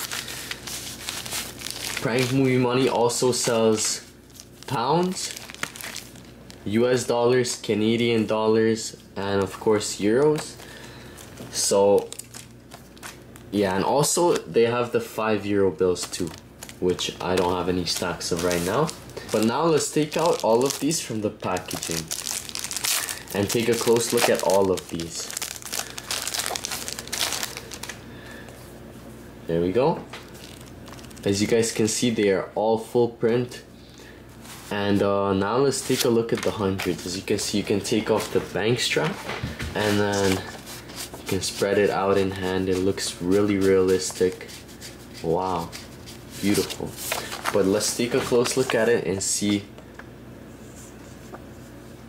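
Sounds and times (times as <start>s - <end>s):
plastic packaging crinkling: 0.0s - 7.7s, 9.4s - 14.5s, 15.8s - 28.0s, 30.2s - 31.5s, 35.7s - 49.0s.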